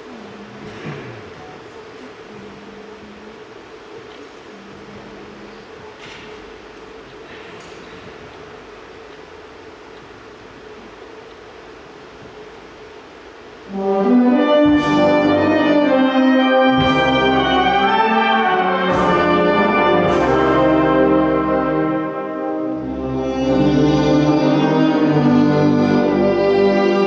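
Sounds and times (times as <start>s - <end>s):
faint steady hum: 0.0s - 16.5s
wind band chord: 13.7s - 27.0s.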